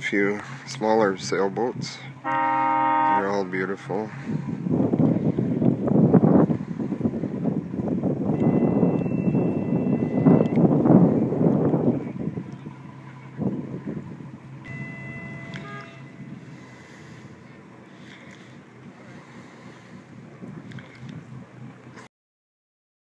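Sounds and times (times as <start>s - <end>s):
steady low hum: 0.0s - 22.1s
wind buffeting microphone: 2.8s - 22.0s
thin high tones: 14.6s - 16.5s.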